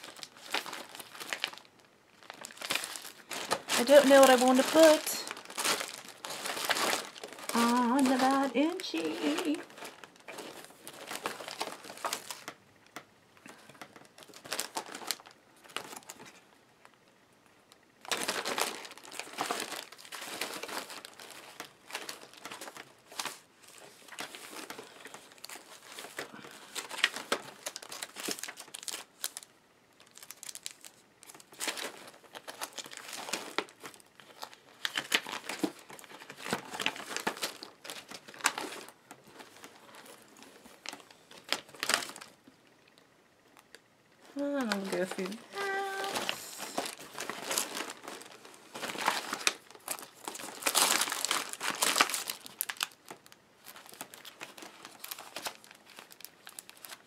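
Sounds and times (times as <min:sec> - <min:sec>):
plastic sleeves and paper crinkling: 0:00.0 - 0:17.0, 0:17.8 - 0:57.0.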